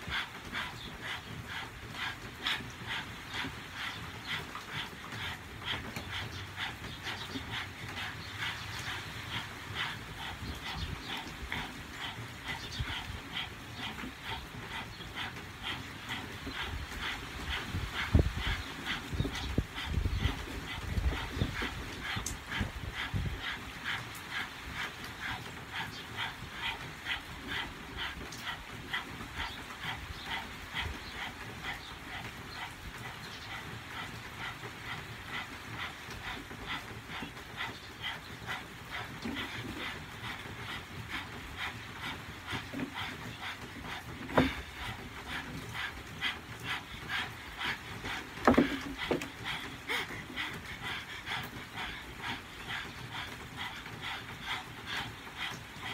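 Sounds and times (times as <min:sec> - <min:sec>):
people panting rapidly: 0:00.0 - 0:55.9.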